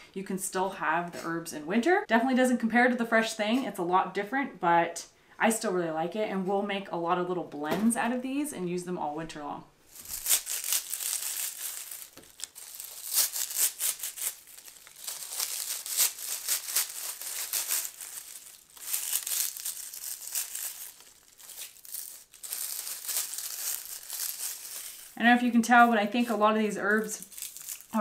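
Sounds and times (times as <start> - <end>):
dried leaves crackling: 9.9 - 28.0.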